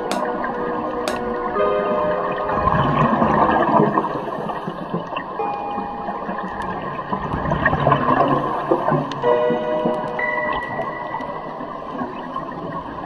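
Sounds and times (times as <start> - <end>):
faint musical tones: 0.0 - 13.0
underwater rush of water: 0.0 - 13.0
air bubbles rising: 2.3 - 5.4, 6.0 - 9.2.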